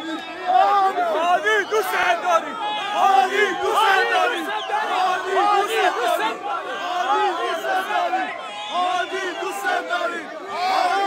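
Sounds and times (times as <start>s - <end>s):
crowd of men shouting and cheering: 0.0s - 11.0s.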